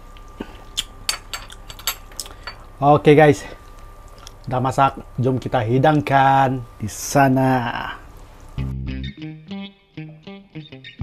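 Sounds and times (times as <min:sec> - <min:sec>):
metal spoon clinking on dish: 0:01.1 - 0:02.6.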